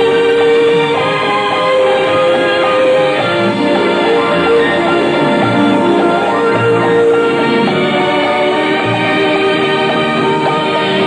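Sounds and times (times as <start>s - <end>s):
old film music with choir singing: 0.0s - 11.0s.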